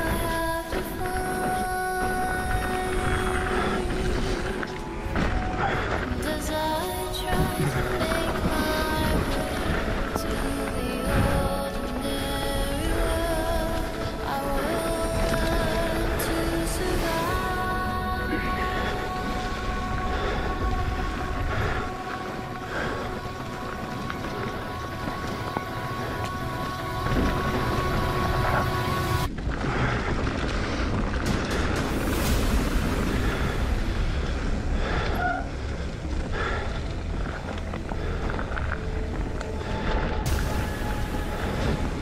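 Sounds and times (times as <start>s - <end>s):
background music: 0.0s - 30.0s, 30.6s - 42.0s
bike rolling on gravel: 0.0s - 42.0s.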